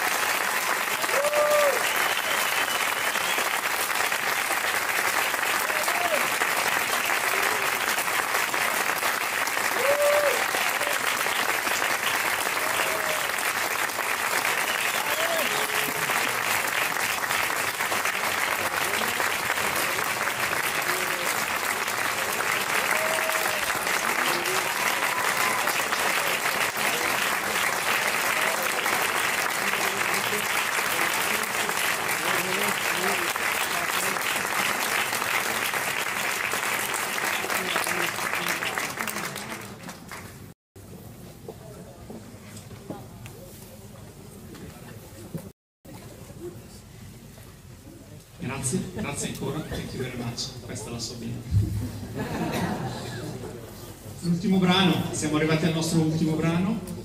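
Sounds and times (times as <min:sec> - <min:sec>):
audience applauding: 0:00.0 - 0:40.6.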